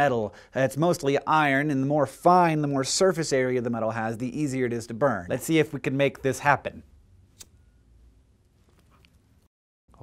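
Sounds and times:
lighter click: 7.4s - 7.6s.

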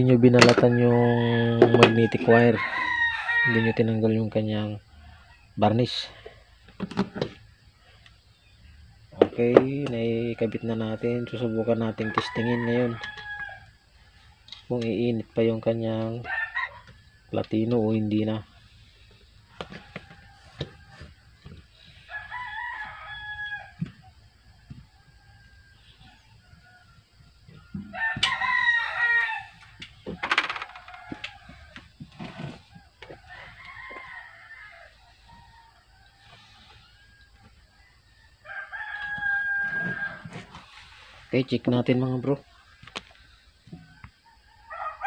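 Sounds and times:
rooster crowing: 0.1s - 4.1s, 9.7s - 14.0s, 15.9s - 17.3s, 19.5s - 41.5s, 43.6s - 45.0s.

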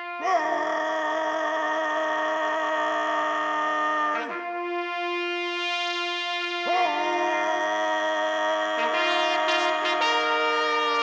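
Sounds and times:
person shouting drill command: 6.7s - 7.7s.

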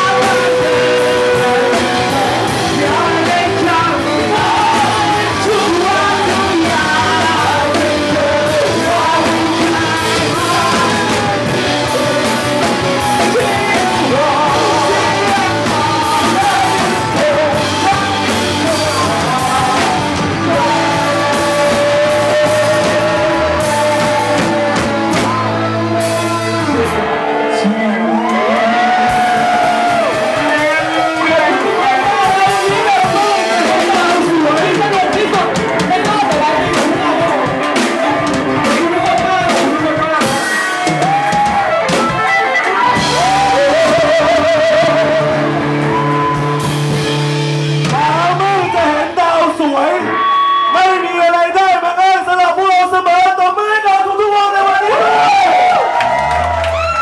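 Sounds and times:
person singing into a microphone: 0.0s - 47.0s, 47.8s - 55.8s
crowd singing along: 0.0s - 47.3s
electric guitar: 0.0s - 51.1s, 54.9s - 57.0s
live band playing: 0.0s - 53.3s, 54.0s - 57.0s.

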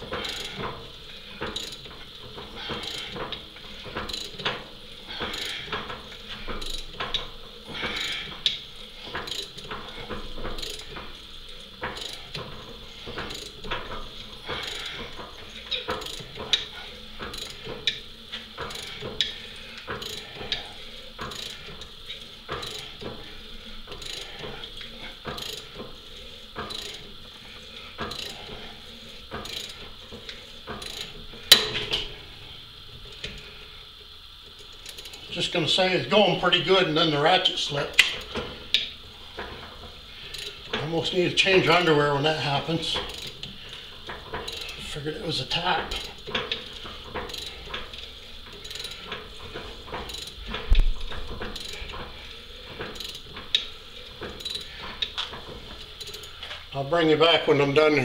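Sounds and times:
ratcheting tap handle clicking: 1.4s - 4.6s, 5.2s - 20.6s, 21.2s - 23.3s, 23.9s - 25.9s, 26.6s - 27.2s, 28.0s - 28.5s, 29.3s - 32.1s, 40.3s - 40.9s, 43.0s - 44.8s, 45.9s - 56.6s.

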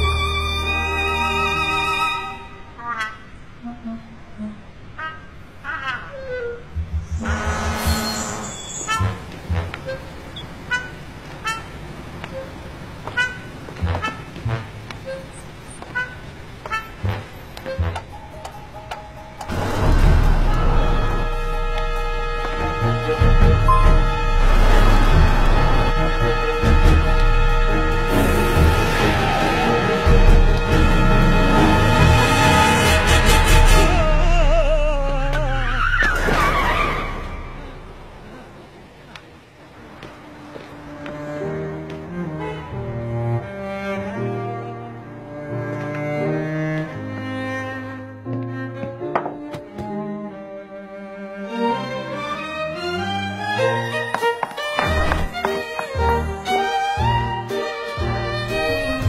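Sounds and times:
soundtrack music with held notes: 0.0s - 5.0s, 16.6s - 35.6s, 40.0s - 59.0s
low traffic rumble: 0.0s - 47.1s
high-pitched horn toots: 2.7s - 18.1s, 20.6s - 37.8s
car tyres squealing: 6.2s - 14.2s, 28.1s - 38.1s.

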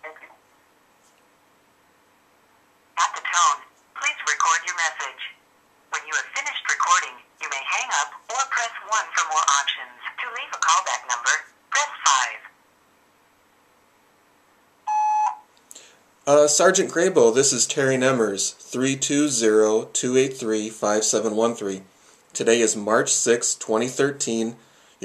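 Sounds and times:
voicemail beep: 14.9s - 15.4s.

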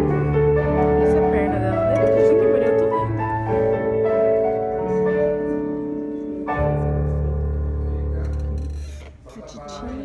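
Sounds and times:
piano chord: 0.0s - 8.6s.

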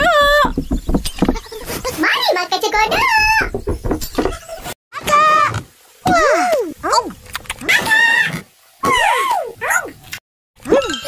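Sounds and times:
cartoon children's wordless voices: 1.8s - 3.5s.

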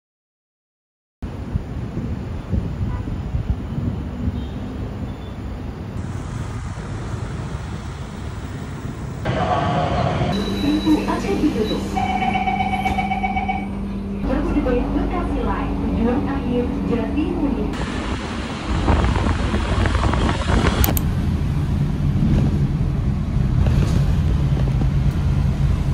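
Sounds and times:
city traffic rumble: 1.2s - 25.9s
train car hum: 1.2s - 25.9s
recorded voice announcement: 9.3s - 12.8s, 14.2s - 17.8s
door-closing warning beeps: 10.3s - 13.8s.

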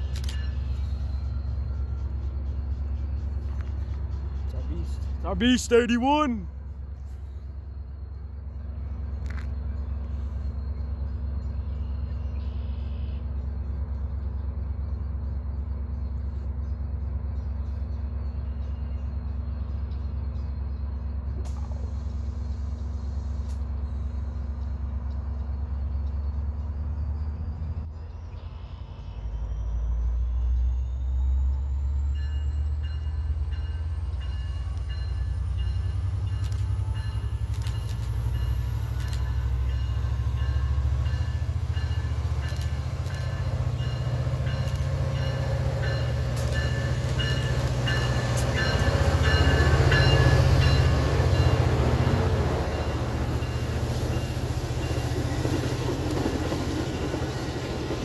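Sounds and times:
diesel locomotive engine rumbling: 0.0s - 58.0s.

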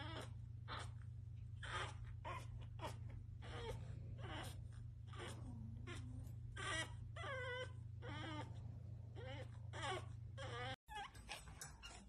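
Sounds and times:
puppy whining and whimpering: 0.0s - 12.0s.

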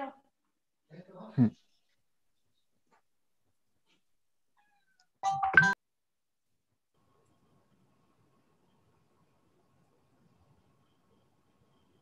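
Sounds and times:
electronic keypad beeps: 5.2s - 5.8s.

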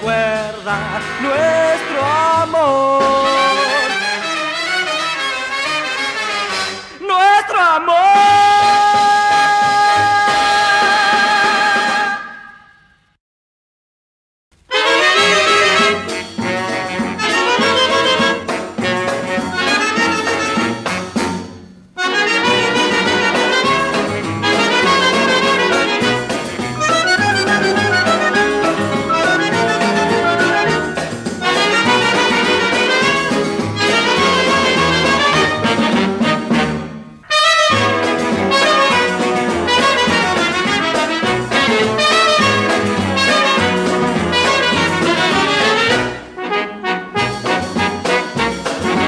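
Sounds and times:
brass dance orchestra: 0.0s - 12.9s, 14.6s - 49.0s.

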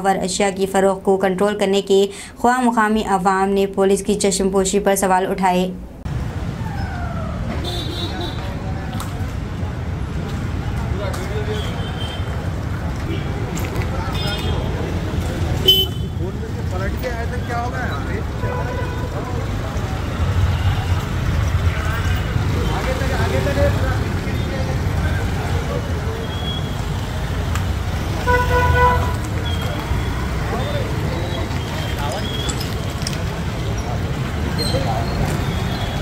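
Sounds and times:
traffic rumble: 0.0s - 36.0s
vehicle horn: 15.6s - 16.2s, 28.2s - 29.2s.

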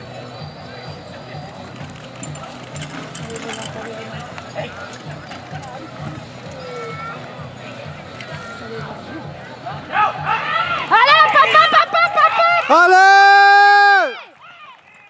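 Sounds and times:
background music: 0.0s - 14.1s
carriage wheels churning sand: 1.1s - 8.5s.

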